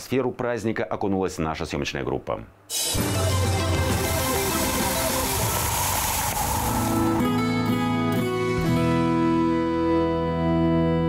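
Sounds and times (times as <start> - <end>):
news jingle with sustained notes: 3.0 - 8.5
rushing noisy sweep: 3.1 - 8.2.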